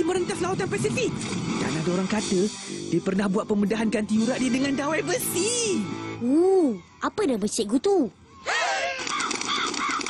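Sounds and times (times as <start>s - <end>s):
crows cawing: 8.4s - 10.0s.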